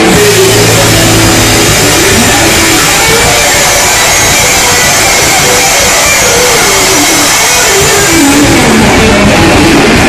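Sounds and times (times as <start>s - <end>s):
live rock band: 0.0s - 10.0s.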